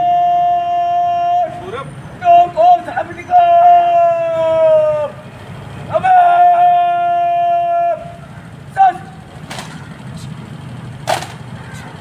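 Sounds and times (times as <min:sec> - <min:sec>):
man shouting a command: 0:00.0 - 0:05.2, 0:05.9 - 0:10.4
rifles clattering: 0:09.4 - 0:09.9, 0:11.0 - 0:11.5.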